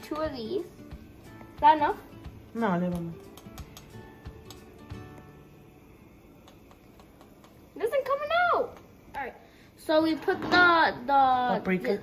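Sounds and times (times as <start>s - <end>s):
quiet music: 0.0s - 9.2s.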